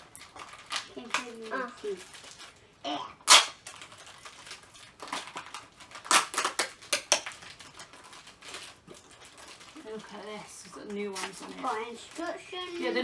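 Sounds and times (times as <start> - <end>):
foil wrappers crinkling and tearing: 0.0 - 13.0.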